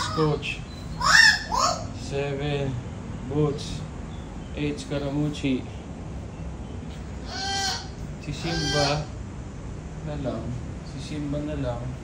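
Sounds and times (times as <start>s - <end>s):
cat meowing: 7.3s - 9.1s.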